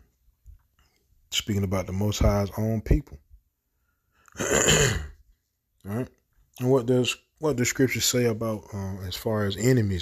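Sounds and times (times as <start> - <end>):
man speaking: 1.3 - 3.3, 5.8 - 10.0
man clearing his throat: 4.4 - 5.2.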